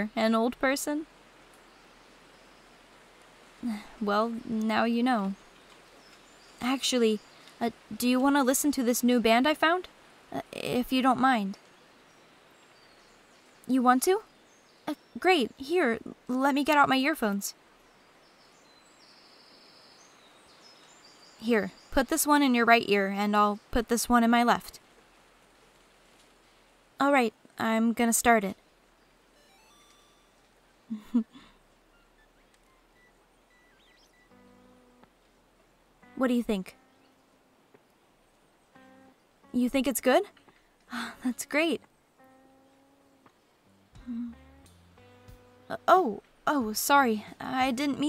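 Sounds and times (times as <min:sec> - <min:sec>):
speech: 0:00.0 - 0:01.1, 0:03.6 - 0:05.4, 0:06.6 - 0:11.6, 0:13.7 - 0:14.2, 0:14.9 - 0:17.6, 0:21.4 - 0:24.8, 0:27.0 - 0:28.6, 0:36.2 - 0:36.8, 0:39.6 - 0:41.8, 0:45.7 - 0:48.0
faint steady hiss: 0:00.0 - 0:48.0.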